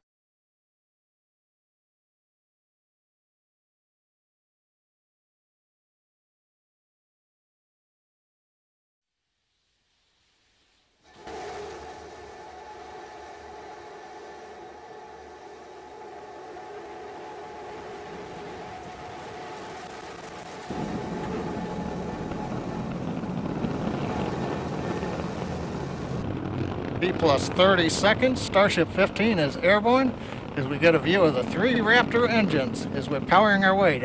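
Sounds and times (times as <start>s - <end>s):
rocket engines roaring: 11.1s - 34.0s.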